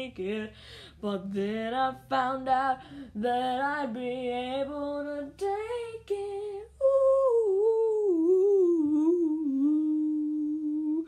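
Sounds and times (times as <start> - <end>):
person humming: 7.3 - 11.0.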